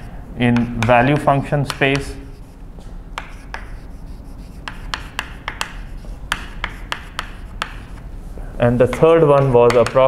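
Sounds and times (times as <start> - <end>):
chalk scratching on blackboard: 0.0 - 2.6, 3.2 - 8.1.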